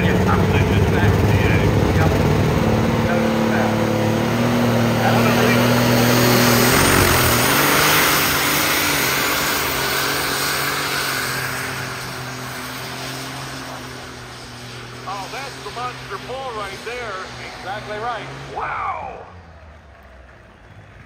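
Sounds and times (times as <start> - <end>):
tractor engine running hard: 0.0 - 21.0.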